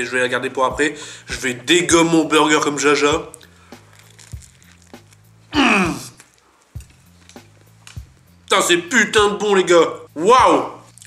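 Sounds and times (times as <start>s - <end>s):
soft mouth clicks chewing: 3.3s - 5.4s, 6.1s - 8.3s.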